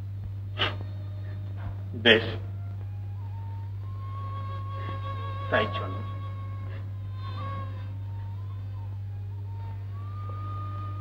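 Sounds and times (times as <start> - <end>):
low soundtrack hum: 0.0 - 11.0.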